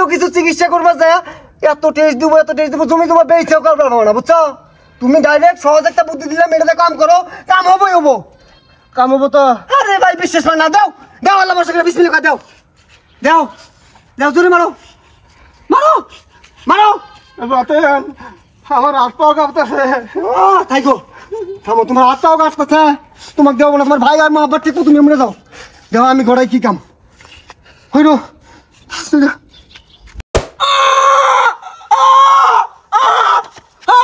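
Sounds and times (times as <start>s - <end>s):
man's high-pitched cries: 0.0s - 12.4s, 15.6s - 26.4s, 30.7s - 34.0s
man yelling: 15.7s - 18.2s, 18.8s - 23.0s.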